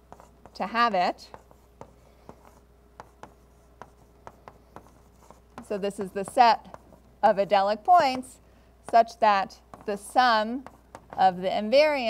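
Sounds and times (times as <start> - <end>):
chalk tapping on blackboard: 0.0 - 7.1, 7.9 - 9.1, 9.7 - 11.3.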